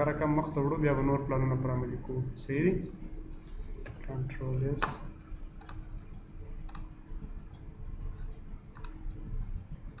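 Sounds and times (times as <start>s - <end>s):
low steady background rumble: 0.0s - 10.0s
computer mouse clicks: 5.6s - 5.8s, 6.7s - 6.9s, 8.7s - 9.0s.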